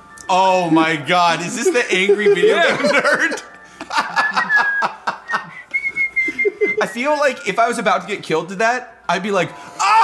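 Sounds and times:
man whistling a tune: 4.2s - 6.9s.

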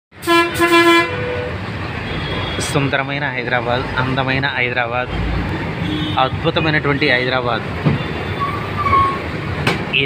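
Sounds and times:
street traffic noise: 0.1s - 10.0s
vehicle horn honking: 0.2s - 2.7s, 5.8s - 7.0s.

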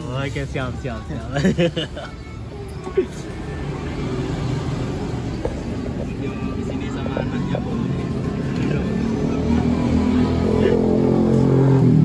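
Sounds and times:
faint voices: 1.9s - 11.3s.

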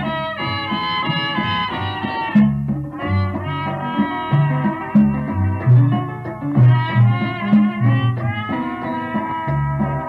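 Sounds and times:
bass line: 0.0s - 10.0s
horns playing a melody: 0.0s - 10.0s
rhythm section: 0.0s - 10.0s.

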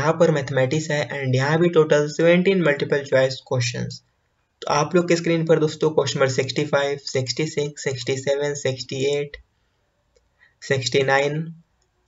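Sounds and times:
man speaking: 0.0s - 4.0s, 4.6s - 9.4s, 10.6s - 11.6s.

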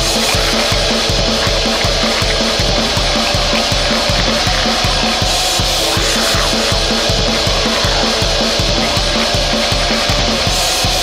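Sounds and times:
fast drumming: 0.0s - 11.0s
heavily distorted guitar: 0.0s - 11.0s.

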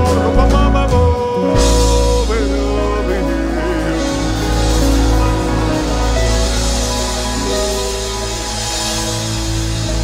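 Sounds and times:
heavy steady bass: 0.0s - 10.0s
live band with strings playing: 0.0s - 10.0s.

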